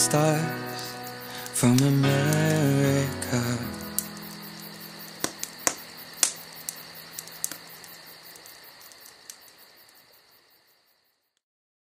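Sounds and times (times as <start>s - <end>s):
campfire crackling and popping: 0.0s - 10.7s
crickets chirring: 0.0s - 11.4s.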